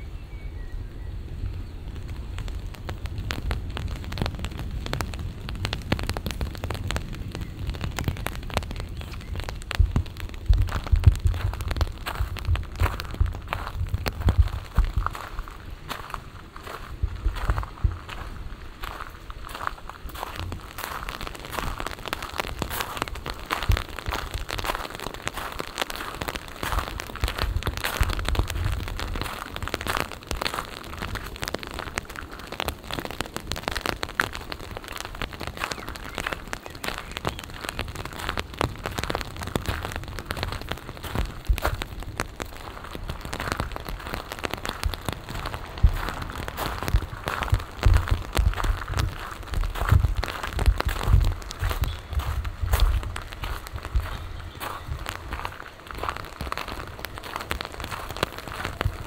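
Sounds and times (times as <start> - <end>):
light rain pattering: 0.0 - 59.0
low rumbles: 0.0 - 59.0.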